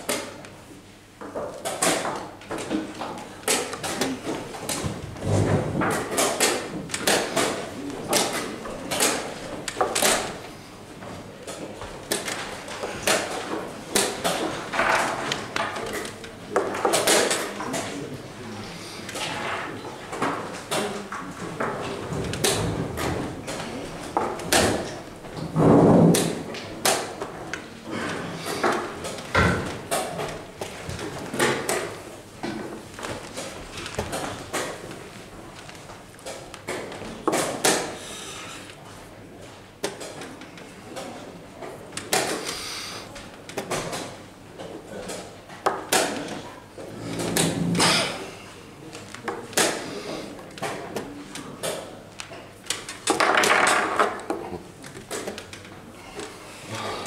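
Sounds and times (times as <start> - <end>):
chess pieces knocking on board: 1.2 - 10.4, 52.7 - 55.7.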